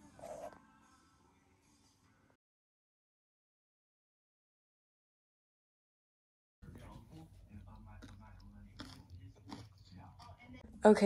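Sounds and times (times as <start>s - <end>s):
person chewing and licking spoon: 6.6s - 10.6s
faint background speech: 6.6s - 11.0s.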